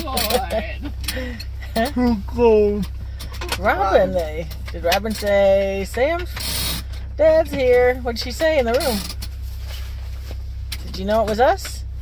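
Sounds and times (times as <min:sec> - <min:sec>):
car engine idling: 0:00.0 - 0:12.0
clothing rustle: 0:09.2 - 0:10.7.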